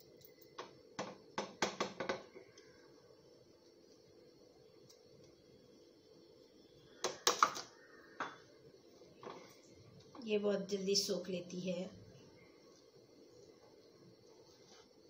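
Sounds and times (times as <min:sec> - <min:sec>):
utensils knocking against cooking pan: 0:01.0 - 0:02.3.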